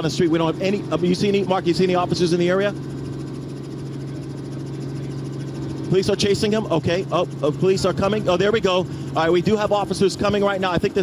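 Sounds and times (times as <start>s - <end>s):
helicopter engine and rotors drone: 0.0s - 11.0s.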